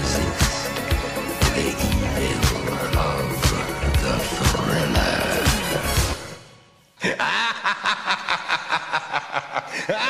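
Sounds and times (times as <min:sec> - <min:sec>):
music with a steady beat: 0:00.0 - 0:06.3
theatrical villain's laugh: 0:07.0 - 0:10.0.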